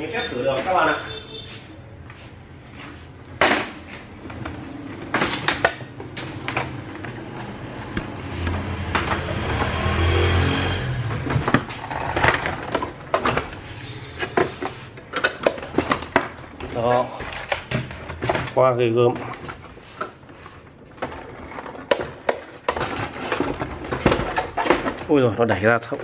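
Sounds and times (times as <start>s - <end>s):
plastic parts clicking and knocking: 3.4s - 9.7s, 11.2s - 26.0s.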